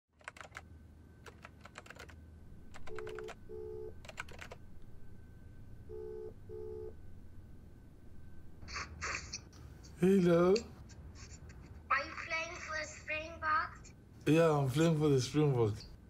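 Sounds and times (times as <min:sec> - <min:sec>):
low steady hum: 0:00.2 - 0:16.0.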